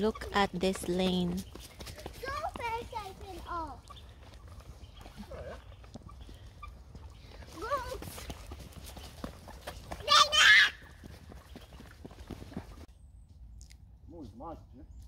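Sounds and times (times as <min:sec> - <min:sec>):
footsteps on wet asphalt: 0:00.3 - 0:12.9.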